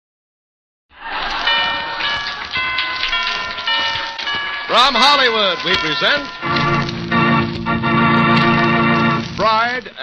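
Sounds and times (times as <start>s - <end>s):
organ music playing chords: 1.4s - 10.0s.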